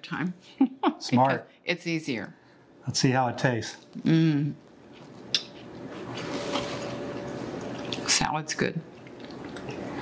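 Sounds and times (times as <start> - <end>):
wet chewing: 5.0 - 8.1, 8.9 - 10.0.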